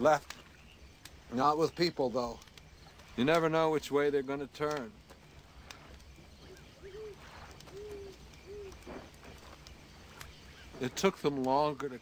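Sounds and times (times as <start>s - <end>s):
faint rustles: 2.0s - 12.0s
owl hooting: 6.4s - 9.5s.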